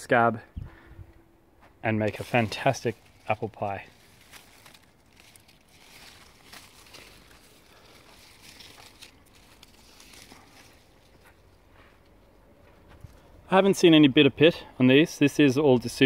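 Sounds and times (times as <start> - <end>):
leaves and twigs rustling: 1.9 - 13.5.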